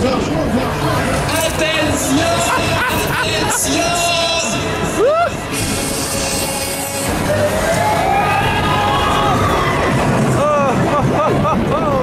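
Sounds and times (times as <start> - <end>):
loud fairground ride music: 0.0 - 12.0
spinning ride noise: 0.0 - 12.0
riders shrieking and whooping: 4.9 - 12.0.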